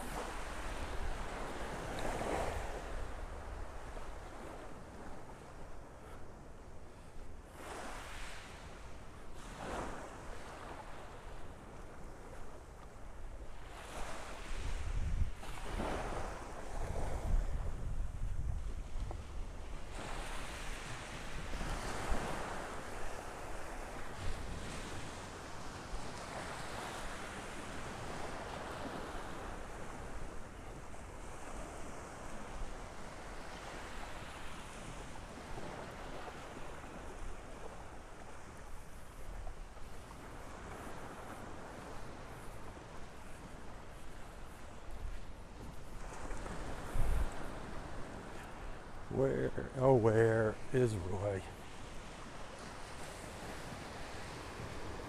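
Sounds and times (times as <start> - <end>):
small waves breaking on shore: 0.0 - 55.0
wind buffeting microphone: 13.2 - 49.3.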